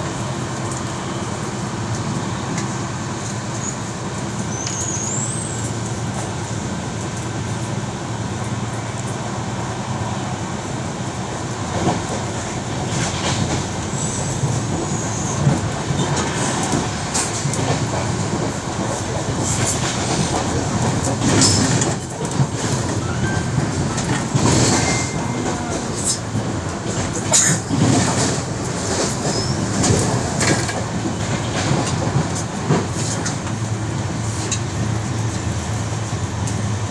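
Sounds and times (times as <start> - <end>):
train coach rumbling: 0.0 - 36.9
rail clicks: 11.4 - 36.9.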